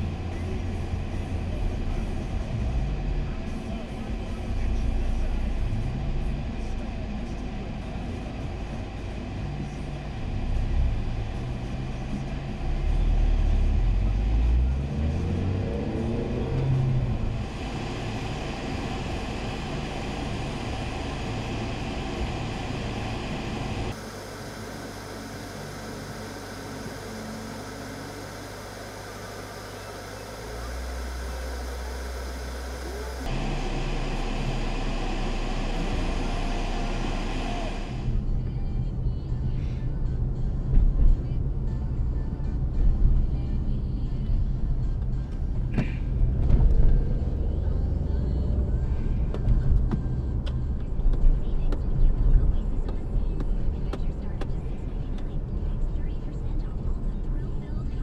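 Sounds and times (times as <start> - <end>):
road noise and engine rumble: 0.0 - 58.0
car radio playing: 16.0 - 38.9, 46.7 - 58.0.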